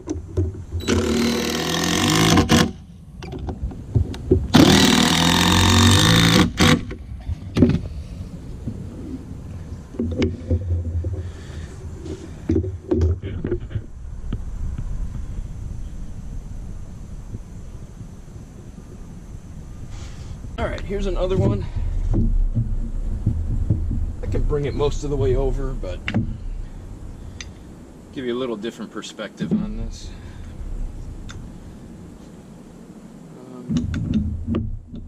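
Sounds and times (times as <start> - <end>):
impact driver driving screws into wood: 0.8 - 2.8, 4.5 - 7.0
light knocks and clatter: 20.8 - 26.5.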